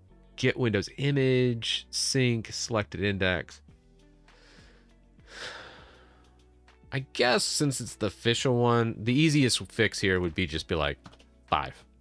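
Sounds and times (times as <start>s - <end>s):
faint background music: 0.0s - 12.0s
man sighing: 5.3s - 6.2s.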